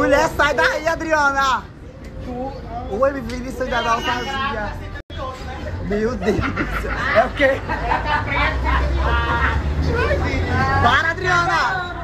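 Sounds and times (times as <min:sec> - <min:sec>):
people's voices: 0:00.0 - 0:12.0
bus engine rumble: 0:04.3 - 0:12.0.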